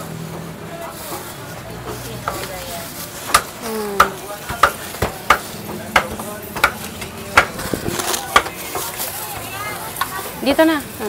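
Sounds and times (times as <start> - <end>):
market din: 0.0 - 11.0
cleaver chopping on wooden block: 3.3 - 7.6.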